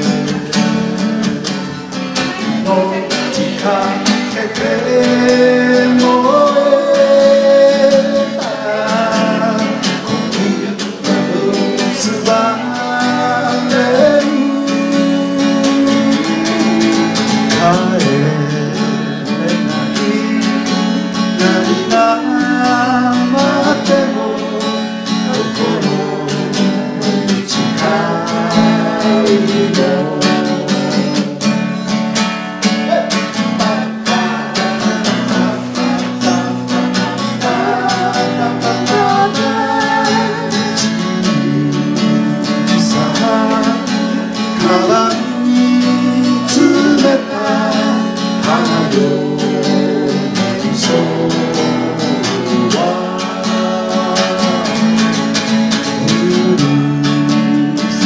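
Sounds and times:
strummed acoustic guitar: 0:00.0 - 0:58.0
woman singing: 0:34.1 - 0:40.9.

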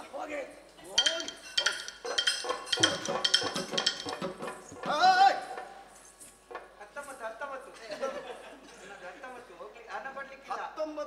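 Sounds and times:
faint metallic clinking: 0:01.0 - 0:04.6.

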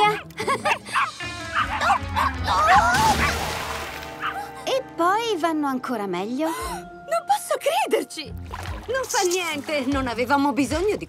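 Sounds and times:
background music: 0:00.0 - 0:11.0
cartoon puppy yipping and barking: 0:00.9 - 0:03.4.

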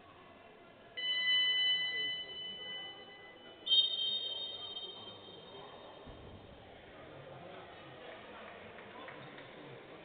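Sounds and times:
high-pitched signal tones: 0:01.0 - 0:05.9.

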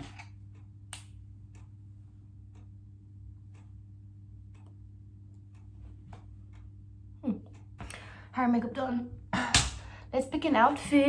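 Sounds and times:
steady low hum: 0:00.0 - 0:11.0
clock ticking: 0:00.3 - 0:11.0.

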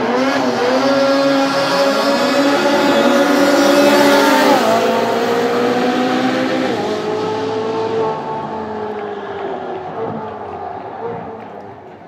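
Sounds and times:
car engine accelerating hard: 0:00.0 - 0:11.7
snowmobile accelerating: 0:00.0 - 0:11.8.

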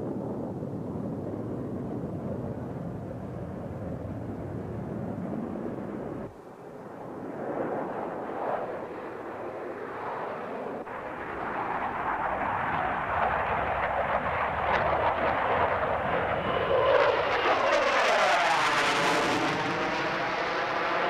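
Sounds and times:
jet engine low rumble: 0:00.0 - 0:21.0.

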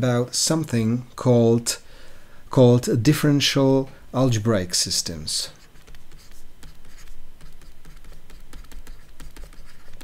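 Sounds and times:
stylus tapping and scratching: 0:05.5 - 0:10.0.

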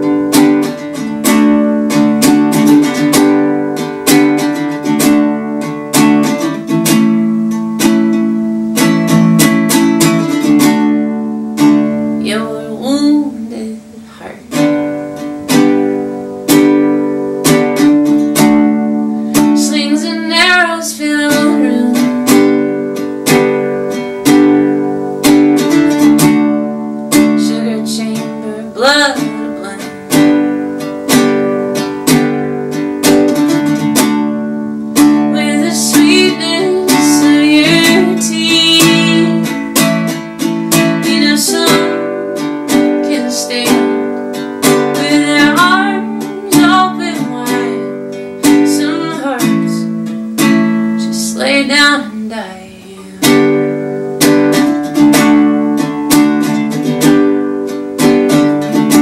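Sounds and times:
ukulele strumming: 0:00.0 - 0:59.0
woman singing: 0:12.2 - 0:15.6, 0:17.5 - 0:26.4, 0:27.1 - 0:31.2, 0:35.0 - 0:53.9.

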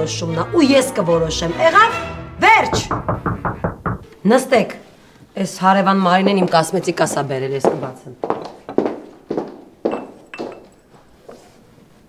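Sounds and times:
rapid knocking: 0:02.6 - 0:04.1.

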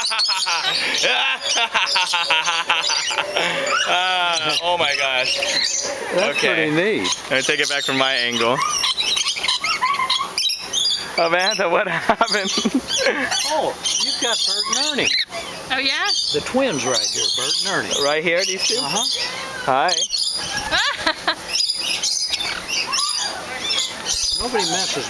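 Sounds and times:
parrots chattering: 0:00.0 - 0:25.0.

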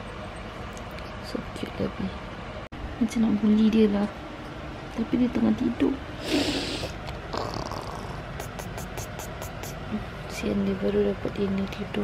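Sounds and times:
cat purring: 0:07.3 - 0:09.8.

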